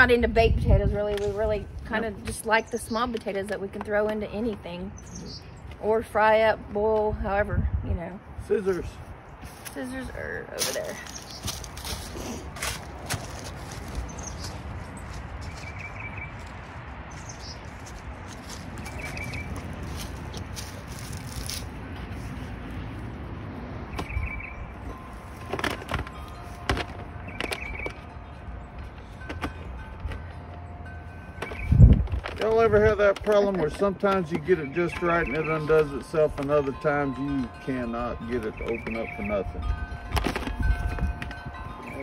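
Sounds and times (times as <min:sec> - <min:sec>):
wind rumbling on microphone: 0:00.0 - 0:03.6, 0:04.6 - 0:25.1, 0:31.3 - 0:33.5, 0:38.1 - 0:42.0
bird chirping trill: 0:04.9 - 0:05.7, 0:13.9 - 0:16.5, 0:17.1 - 0:17.9, 0:18.5 - 0:19.8, 0:23.9 - 0:25.1, 0:26.2 - 0:29.8, 0:30.6 - 0:32.0, 0:34.2 - 0:40.1.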